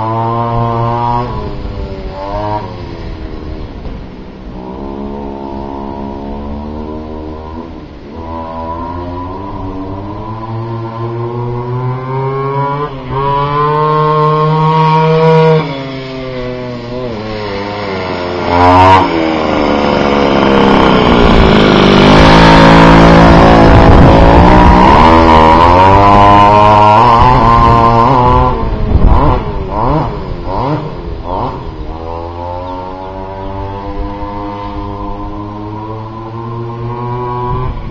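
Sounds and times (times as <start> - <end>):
scooter engine revving: 0.0 - 3.6, 4.5 - 37.9.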